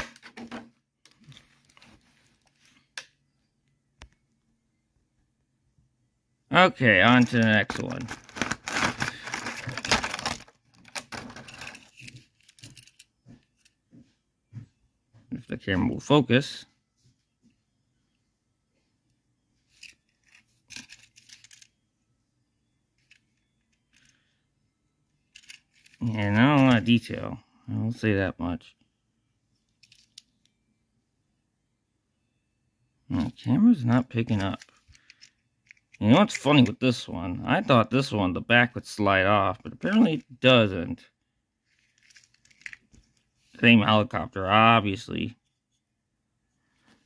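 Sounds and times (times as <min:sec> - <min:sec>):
plastic packaging rustling: 0:07.2 - 0:12.8.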